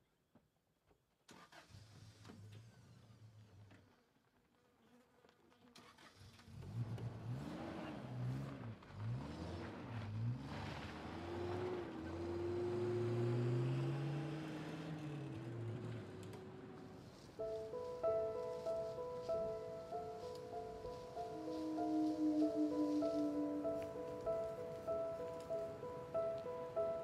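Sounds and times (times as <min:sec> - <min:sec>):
tyres on gravel road: 0:05.4 - 0:27.0
car engine revving: 0:06.5 - 0:19.7, 0:20.3 - 0:27.0.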